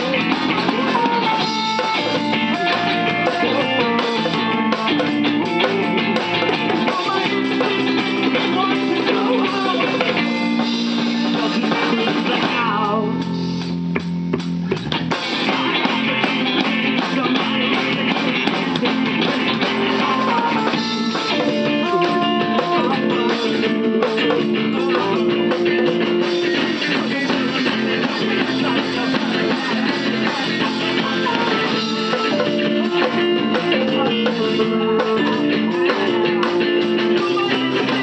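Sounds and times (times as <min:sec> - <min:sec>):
bass guitar: 0:00.0 - 0:38.0
drum kit: 0:00.0 - 0:38.0
keyboard: 0:00.0 - 0:38.0.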